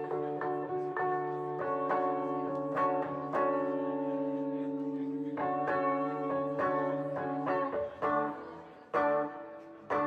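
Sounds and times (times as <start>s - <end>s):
sustained guitar and synth chord: 0.0s - 10.0s.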